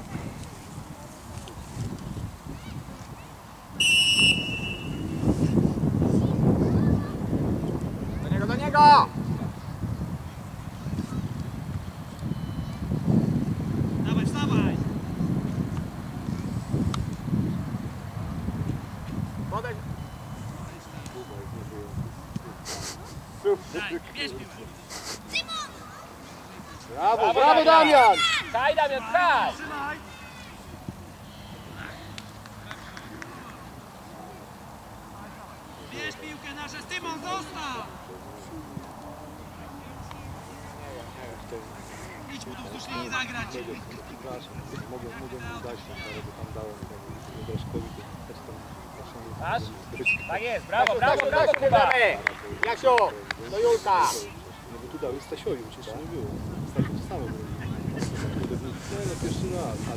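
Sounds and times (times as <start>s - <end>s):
wind buffeting microphone: 0.0s - 3.4s, 4.2s - 20.8s, 44.5s - 50.1s, 55.1s - 59.9s
distant shouting: 3.8s - 5.3s, 25.3s - 33.8s
referee's whistle blast: 3.8s - 5.3s, 50.0s - 50.5s.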